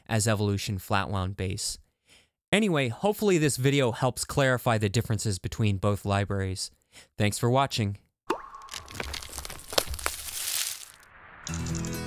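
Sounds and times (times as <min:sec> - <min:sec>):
upward swoop into tone: 0:11.0 - 0:12.0.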